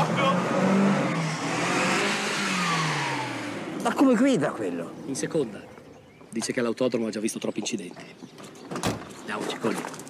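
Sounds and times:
van engine revving: 0:00.0 - 0:05.5.

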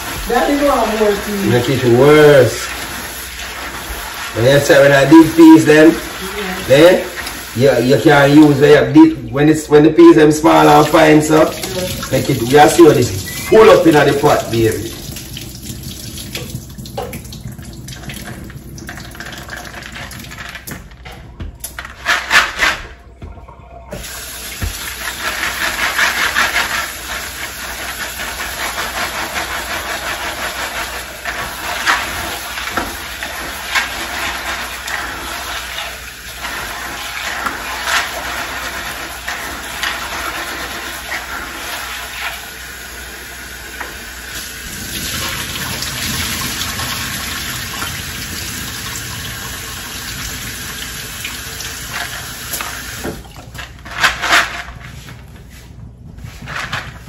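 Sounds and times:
faucet running into bowl: 0:00.0 - 0:09.4, 0:10.4 - 0:20.8, 0:23.8 - 0:53.5.

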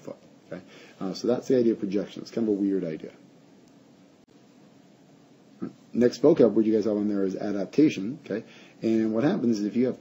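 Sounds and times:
faint recording hiss: 0:00.0 - 0:10.0.

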